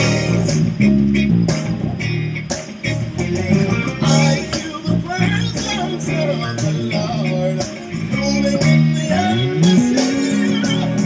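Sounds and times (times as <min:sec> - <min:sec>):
electric bass playing low notes: 0:00.0 - 0:11.0
gospel recording: 0:00.0 - 0:11.0
person singing: 0:03.5 - 0:11.0.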